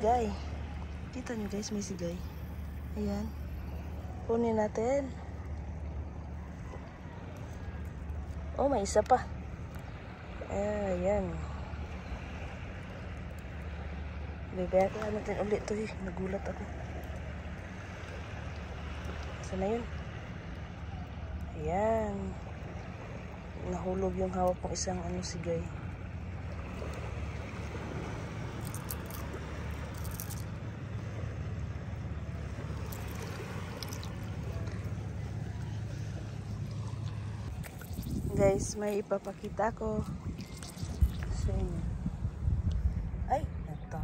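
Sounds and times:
faint water splashes: 0:00.0 - 0:44.0
sea rumbling at shore: 0:00.0 - 0:44.0
hand picking through seaweed: 0:28.5 - 0:30.6, 0:32.7 - 0:38.1.

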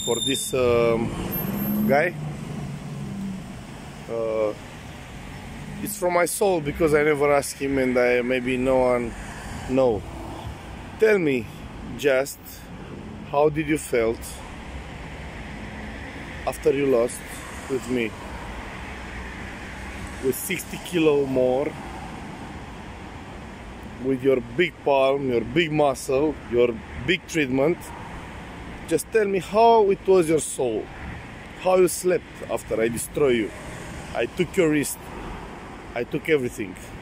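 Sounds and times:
low rumble of street traffic: 0:00.0 - 0:37.0
low steady vehicle hum: 0:00.0 - 0:37.0.

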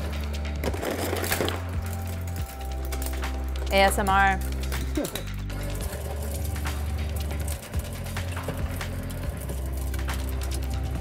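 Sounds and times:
background music: 0:00.0 - 0:11.0
shredder crunching plastic: 0:00.6 - 0:01.9.

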